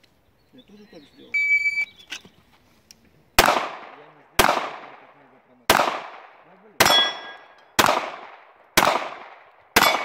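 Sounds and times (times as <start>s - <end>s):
pistol shots echoing: 3.4s - 10.0s.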